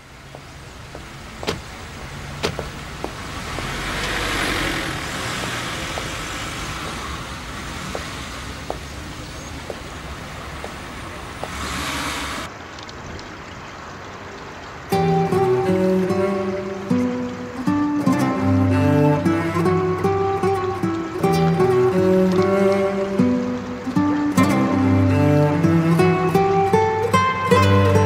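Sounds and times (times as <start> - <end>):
car engine and tyre noise: 0.0 - 28.0.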